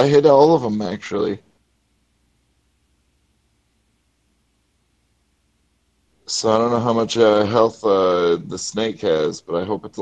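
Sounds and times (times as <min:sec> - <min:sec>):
faint hiss and hum: 0:00.0 - 0:10.0.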